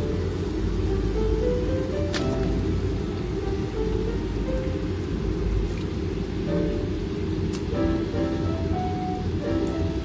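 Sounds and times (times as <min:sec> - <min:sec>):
background music: 0:00.0 - 0:05.1, 0:06.4 - 0:10.0
water boiling in a pot: 0:00.0 - 0:10.0.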